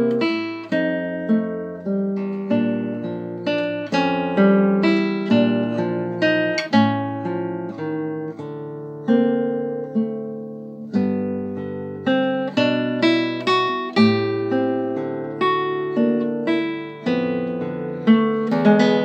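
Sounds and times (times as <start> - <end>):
solo guitar plucking chords: 0.0 - 19.0.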